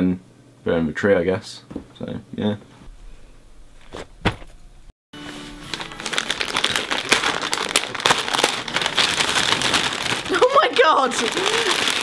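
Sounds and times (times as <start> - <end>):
background music: 5.2 - 10.6
wrapping paper crinkling and tearing: 5.2 - 12.0.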